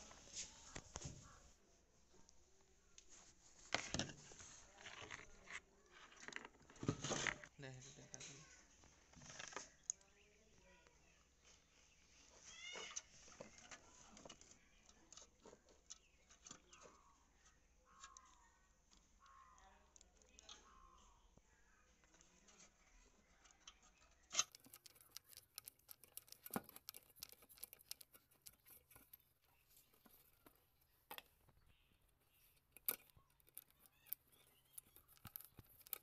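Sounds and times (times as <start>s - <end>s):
faint animal call: 12.2s - 13.5s, 16.7s - 21.9s
screwdriver and metal parts clicking: 23.7s - 31.4s, 32.2s - 36.0s.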